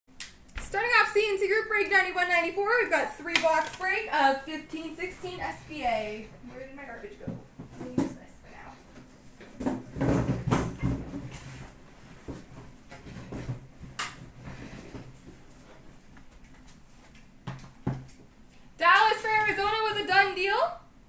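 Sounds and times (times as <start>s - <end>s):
boxes knocking and rustling on glass: 9.6s - 11.4s.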